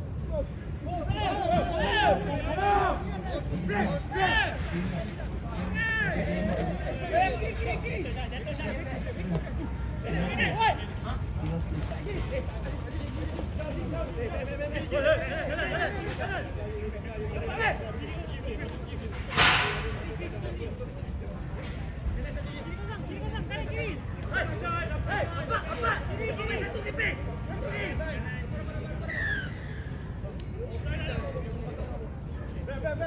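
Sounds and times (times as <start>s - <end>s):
murmur of voices: 0.0s - 33.0s.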